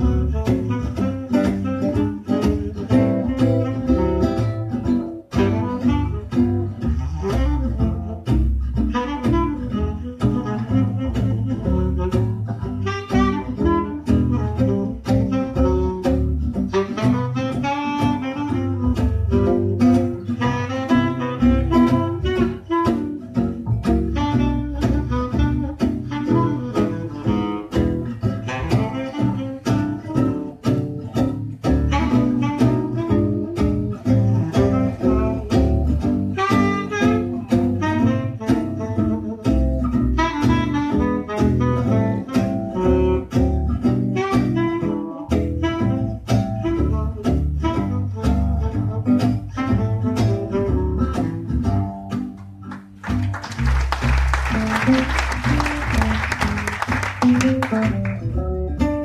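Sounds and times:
double bass: 0:00.0 - 0:59.0
guitar: 0:00.0 - 0:59.0
saxophone melody: 0:00.0 - 0:59.0.

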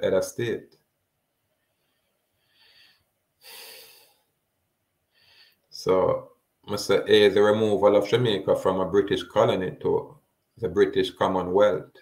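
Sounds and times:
man breathing: 0:01.5 - 0:04.4, 0:05.1 - 0:05.7.

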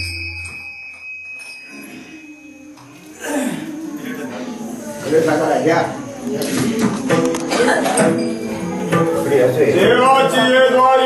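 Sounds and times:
hand cymbals clinking: 0:00.0 - 0:02.9
voices in crowded room: 0:01.7 - 0:11.0.

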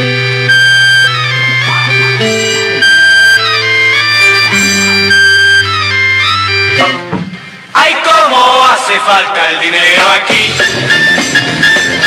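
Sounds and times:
steady bass line: 0:00.0 - 0:07.1
reedy melody: 0:00.0 - 0:07.6, 0:10.4 - 0:12.0.

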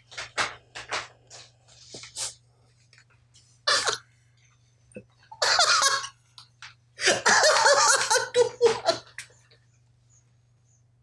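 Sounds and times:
man laughing hard: 0:05.4 - 0:06.1, 0:07.0 - 0:09.2.

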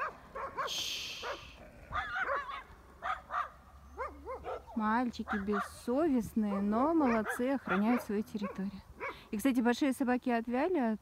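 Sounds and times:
dogs barking and yelping: 0:00.0 - 0:05.8, 0:06.5 - 0:09.3
brief hiss of noise: 0:00.7 - 0:01.6.

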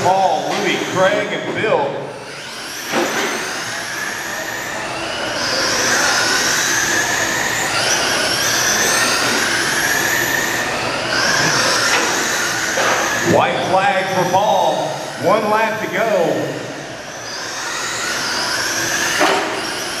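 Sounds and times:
rc trucks whining motors: 0:00.0 - 0:20.0.

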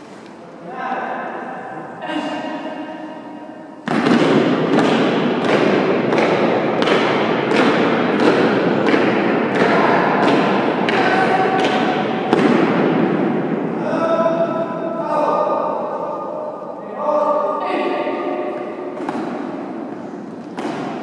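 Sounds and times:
shouted military command: 0:10.9 - 0:11.8, 0:13.8 - 0:18.5.

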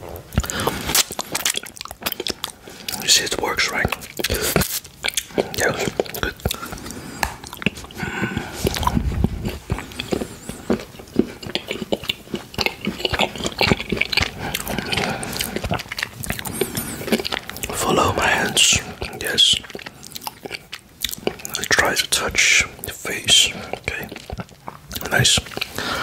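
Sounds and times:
chewing chocolate: 0:00.0 - 0:26.0.

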